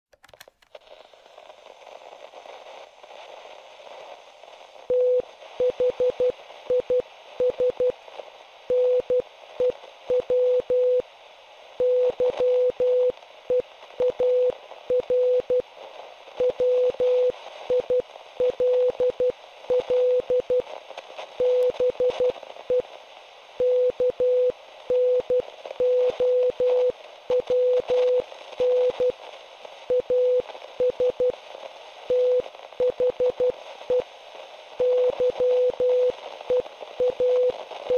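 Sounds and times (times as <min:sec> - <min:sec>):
radio static hiss: 0:00.7 - 0:37.9
morse code beeps: 0:04.9 - 0:07.9, 0:08.7 - 0:11.0, 0:11.8 - 0:15.6, 0:16.4 - 0:20.6, 0:21.4 - 0:22.8, 0:23.6 - 0:29.2, 0:29.9 - 0:31.3, 0:32.1 - 0:34.0, 0:34.8 - 0:37.9.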